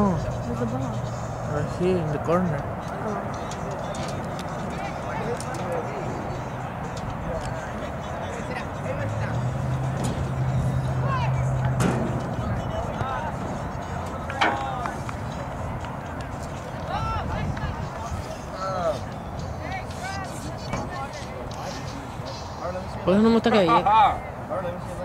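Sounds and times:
wind: 0.0s - 25.0s.

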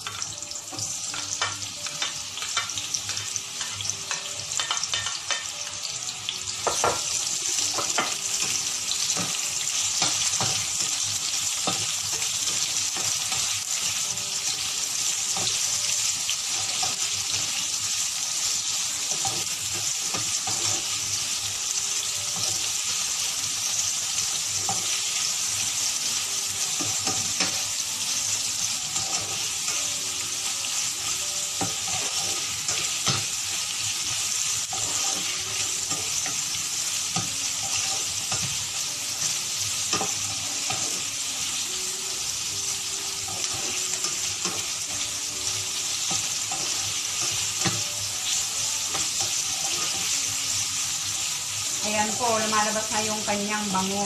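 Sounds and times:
onions sizzling in oil: 0.0s - 54.0s.

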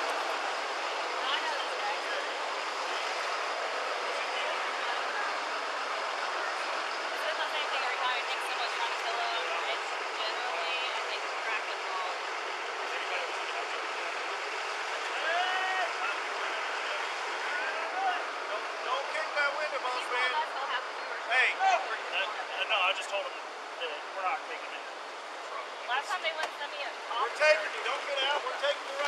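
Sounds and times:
distant voices talking: 0.0s - 29.0s
street background hiss: 0.0s - 29.0s.

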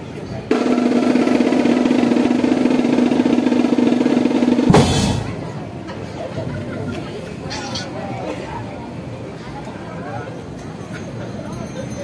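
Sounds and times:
snare drum roll: 0.5s - 5.5s.

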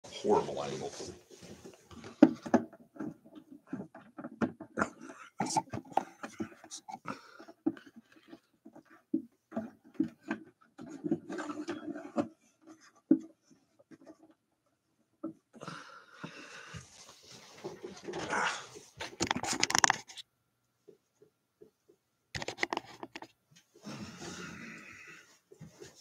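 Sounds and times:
webcam handling knocks and clicks: 19.1s - 20.2s, 22.4s - 23.3s.

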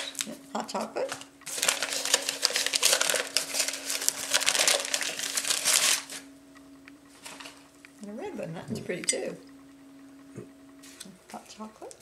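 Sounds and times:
paper wrapping crinkling: 0.0s - 0.4s, 1.0s - 6.3s, 7.1s - 7.6s.

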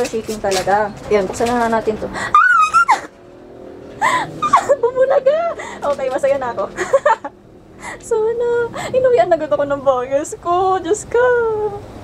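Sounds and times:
person squealing with delight: 2.3s - 3.1s.

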